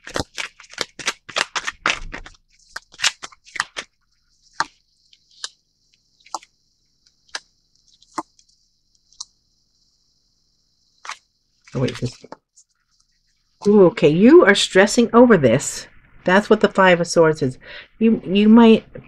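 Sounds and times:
cards being shuffled: 0.0 - 6.5, 11.0 - 12.4.

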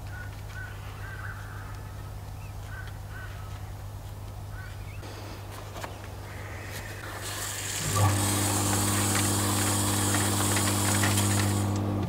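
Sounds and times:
machine drone with high hiss: 5.0 - 12.0.

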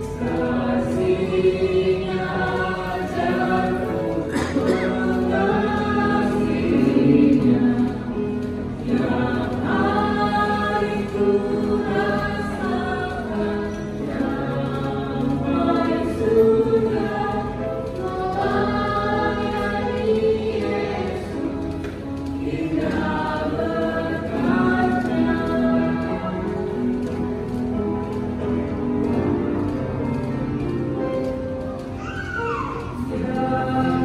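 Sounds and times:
group singing through loudspeakers: 0.0 - 27.9, 32.9 - 34.0.

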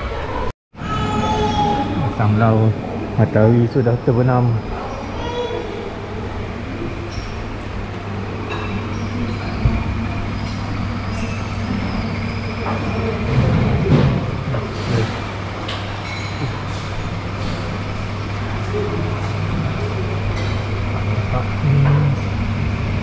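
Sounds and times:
steady low hum: 0.2 - 23.0.

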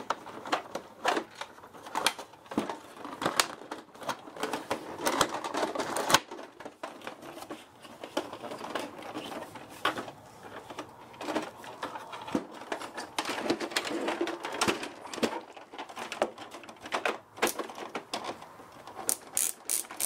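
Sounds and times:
hard plastic knocks and rattles: 0.0 - 19.2
sharp plastic clack: 10.8 - 20.0.

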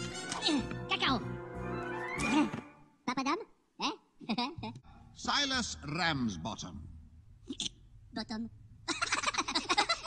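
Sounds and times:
background music: 0.0 - 3.1.

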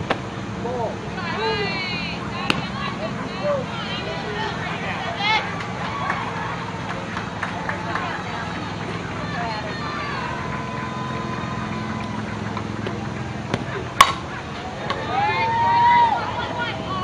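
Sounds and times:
spectators and players talking: 0.6 - 17.0
bat cracking against ball: 12.5 - 15.0.

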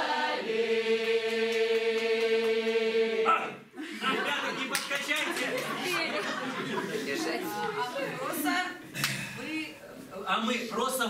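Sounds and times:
group of people chattering: 4.0 - 11.0.

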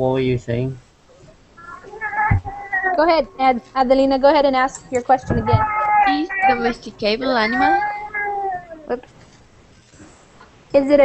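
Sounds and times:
cat meowing: 1.6 - 4.2, 4.8 - 9.0.

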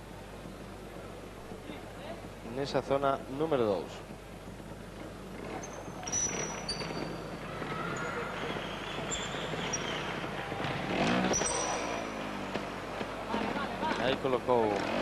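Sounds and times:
murmur of arena crowd: 0.0 - 15.0
motorcycle engine idling and revving: 9.3 - 15.0.

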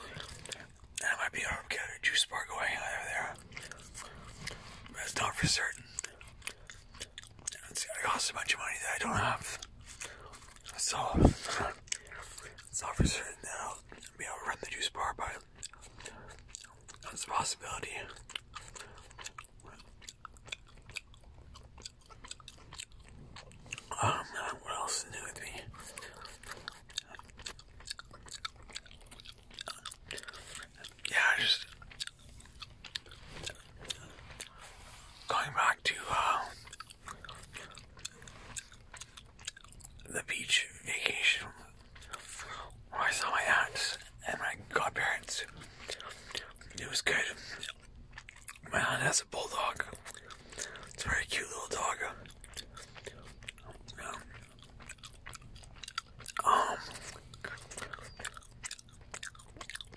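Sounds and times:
gum chewing wet clicks: 0.0 - 59.9.

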